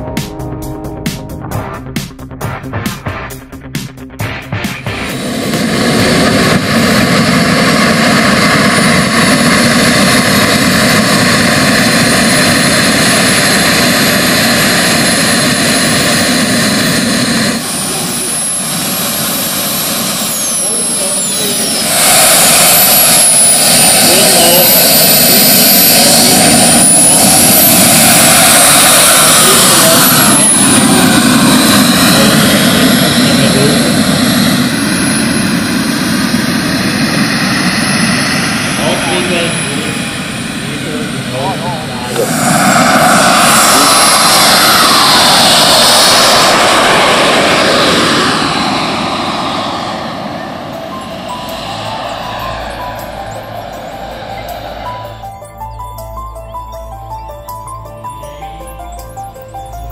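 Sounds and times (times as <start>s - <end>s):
model jet turbines whining: 4.8s - 59.9s.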